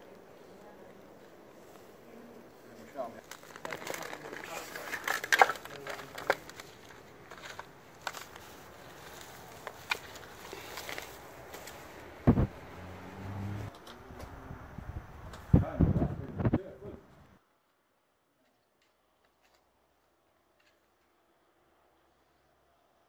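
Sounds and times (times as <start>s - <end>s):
roots and twigs snapping: 3.2s - 12.2s
heavy thump: 12.2s - 12.6s.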